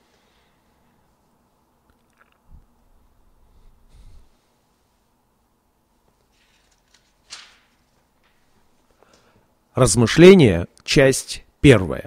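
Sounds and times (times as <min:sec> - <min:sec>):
soft rush of breath: 0:03.0 - 0:05.2.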